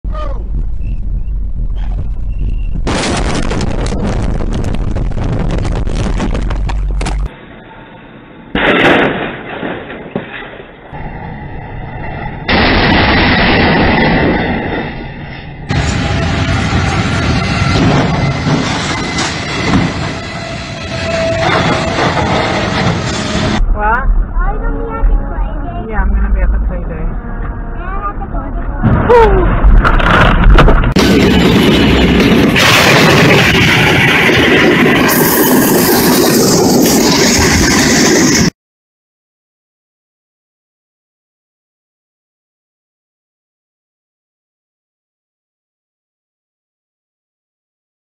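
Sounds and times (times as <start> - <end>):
loud crash bangs: 2.8 - 6.4, 8.6 - 10.8, 12.4 - 23.7, 28.8 - 38.5.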